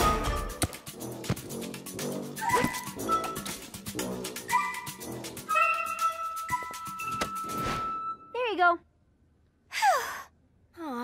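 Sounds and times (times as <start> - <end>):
playful cartoon music: 0.0 - 8.3.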